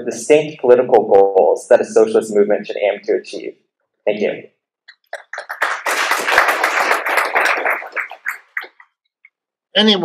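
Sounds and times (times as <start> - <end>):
audience applauding: 5.1 - 8.8.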